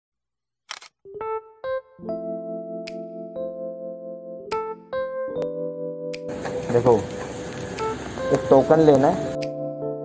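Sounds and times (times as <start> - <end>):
camera shutter click: 0.7 - 0.9.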